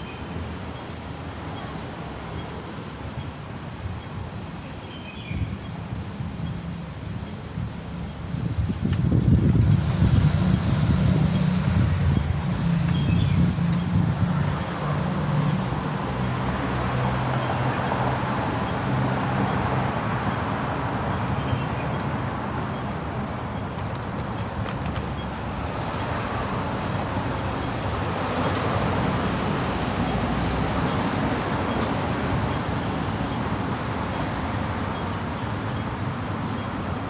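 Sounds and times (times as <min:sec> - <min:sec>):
road traffic rumbling: 0:00.0 - 0:37.0
wind on microphone: 0:05.3 - 0:36.4.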